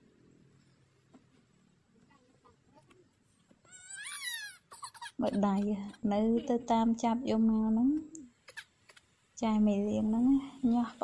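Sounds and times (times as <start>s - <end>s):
baby whimpering: 3.7s - 5.9s
baby crying: 3.7s - 6.0s.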